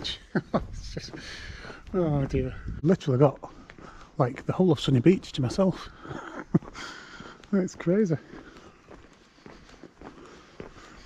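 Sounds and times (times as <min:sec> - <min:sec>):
man laughing: 0:00.0 - 0:01.5, 0:06.0 - 0:07.1
footsteps on paved street: 0:00.0 - 0:11.0.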